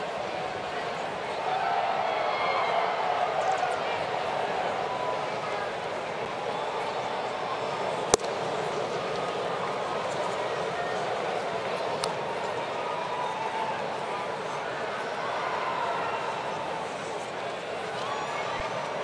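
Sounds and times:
ballpark crowd murmur: 0.0s - 19.0s
ball smacking into mitt: 8.1s - 8.4s.

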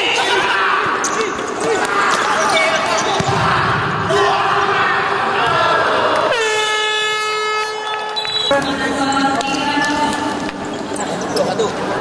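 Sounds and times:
air horn blowing: 6.3s - 8.6s.

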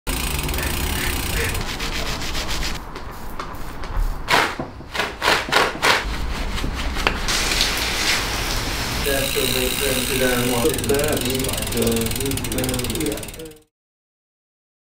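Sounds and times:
foaming degreaser hissing: 0.3s - 4.5s, 6.2s - 13.4s
water spray hissing: 0.3s - 4.6s, 6.2s - 12.4s.

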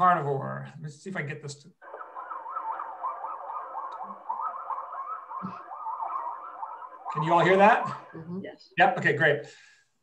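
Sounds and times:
coyote pups howling: 1.8s - 8.3s.

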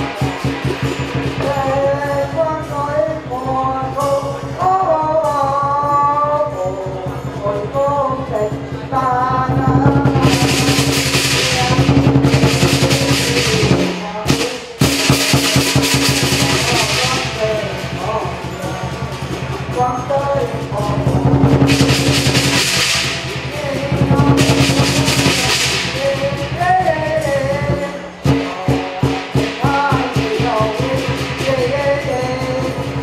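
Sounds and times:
cymbals crashing: 0.0s - 33.0s
drum beating fast: 0.0s - 33.0s.

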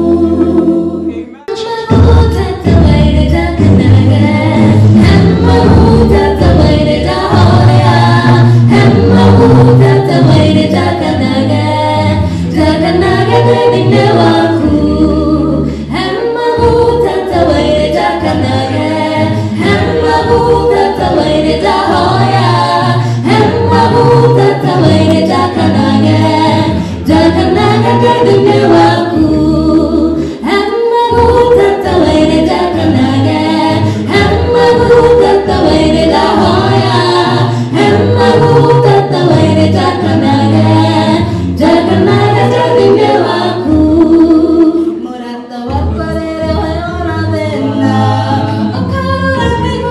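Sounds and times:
a cappella group singing in harmony: 0.0s - 49.9s.

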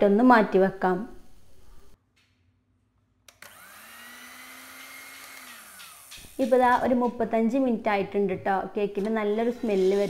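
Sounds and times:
electric hand mixer whirring: 3.3s - 6.8s, 9.2s - 10.0s.

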